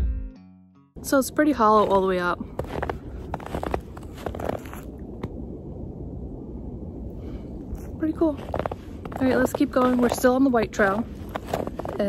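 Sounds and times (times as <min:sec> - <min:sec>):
low rumble: 0:01.0 - 0:12.0
crunching in snow: 0:01.1 - 0:05.4, 0:07.7 - 0:12.0.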